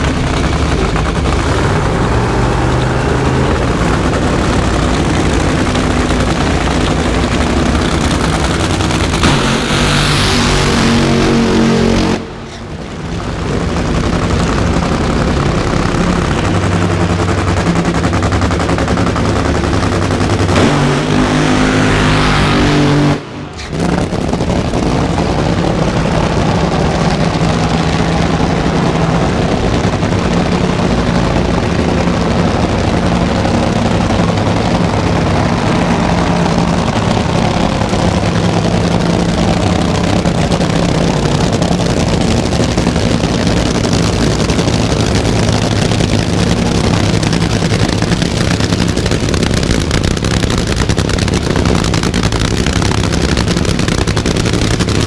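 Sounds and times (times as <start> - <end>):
nitro drag racing engines roaring: 0.0 - 55.0.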